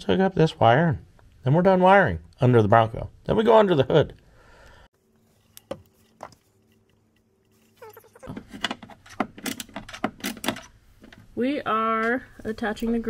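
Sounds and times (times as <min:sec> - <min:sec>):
clicks and rattles of wiring connectors: 0:08.3 - 0:11.2.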